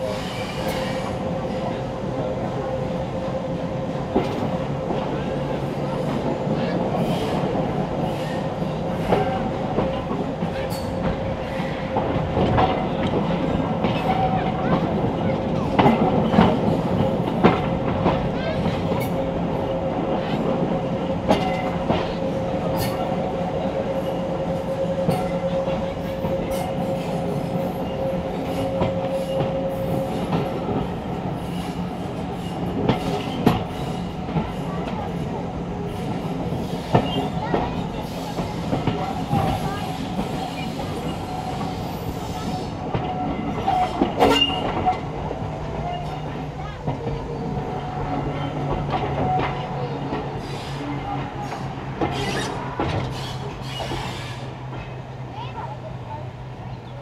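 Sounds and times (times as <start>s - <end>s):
train carriage rumble: 0.0s - 57.0s.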